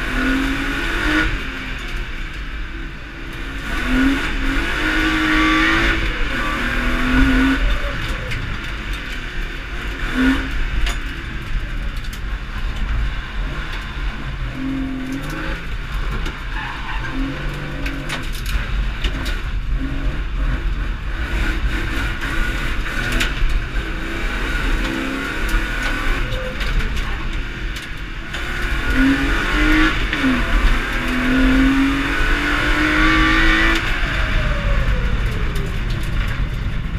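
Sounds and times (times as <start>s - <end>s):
car engine revving: 0.0s - 36.9s.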